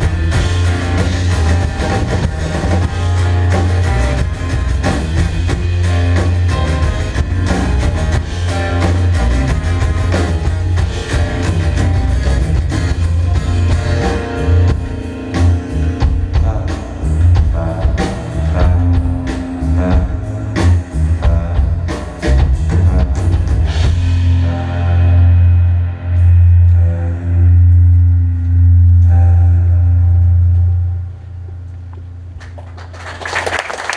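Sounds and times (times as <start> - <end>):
drum kit: 0.0 - 29.6
rock band playing live: 0.0 - 31.0
long low ringing notes: 23.7 - 32.6.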